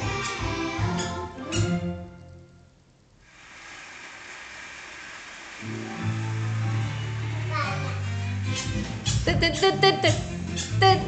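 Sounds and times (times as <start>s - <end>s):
even background hiss: 0.0s - 11.0s.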